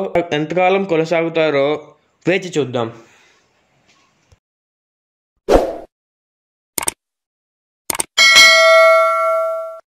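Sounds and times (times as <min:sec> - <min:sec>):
bright bell ding: 0:08.2 - 0:09.8.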